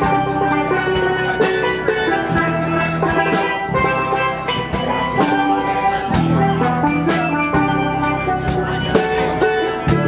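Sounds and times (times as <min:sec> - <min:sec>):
drum kit beat: 0:00.0 - 0:10.0
electric bass guitar: 0:00.0 - 0:10.0
steel pans playing: 0:00.0 - 0:10.0.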